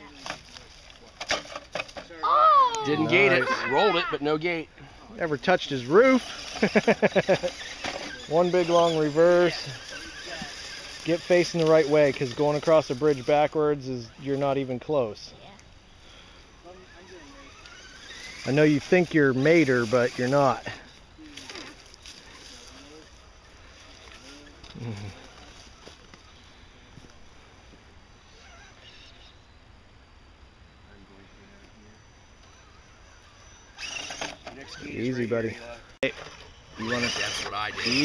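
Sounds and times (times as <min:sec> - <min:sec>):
electric motor whine: 0:05.4 - 0:13.6, 0:16.0 - 0:29.5, 0:30.9 - 0:38.0.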